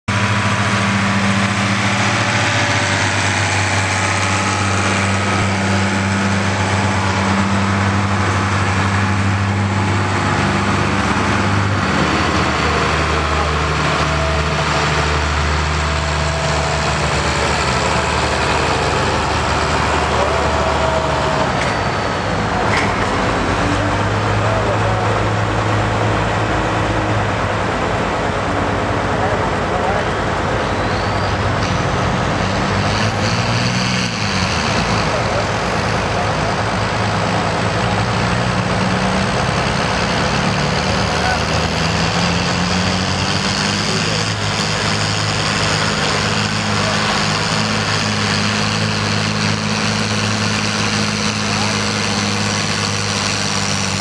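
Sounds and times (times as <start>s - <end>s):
tractor engine running: 0.0s - 54.0s.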